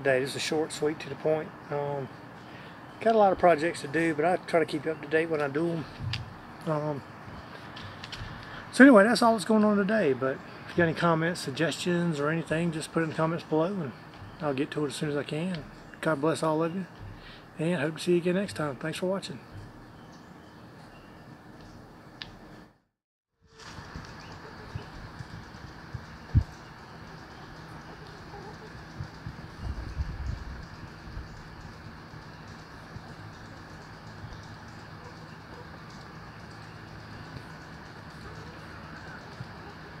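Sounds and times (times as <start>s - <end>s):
steady background hiss: 0.0s - 22.6s
faint bird sounds: 0.1s - 9.4s, 23.6s - 40.0s.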